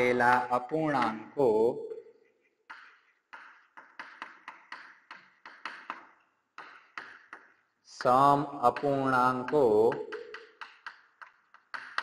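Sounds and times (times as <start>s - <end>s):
chalk tapping and scraping: 0.0s - 12.0s.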